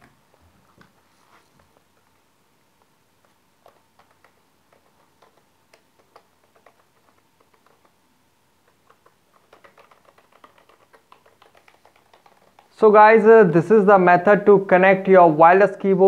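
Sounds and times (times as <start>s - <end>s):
keyboard key clicks: 8.7s - 12.7s.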